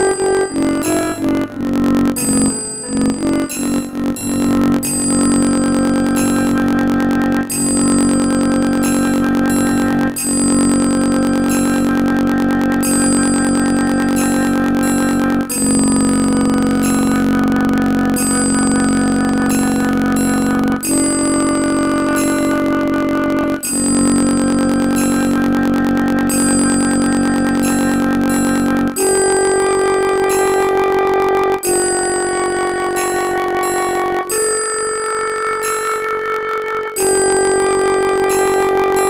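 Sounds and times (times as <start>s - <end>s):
synthesized flute melody: 0.0s - 39.0s.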